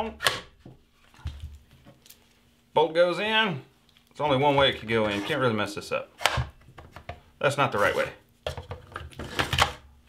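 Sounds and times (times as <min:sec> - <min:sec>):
sliding scrape: 0:04.4 - 0:05.8.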